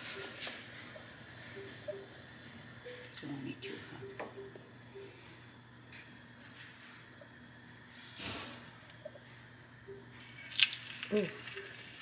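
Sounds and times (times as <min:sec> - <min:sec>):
food sizzling in hot oil: 0:10.2 - 0:12.0.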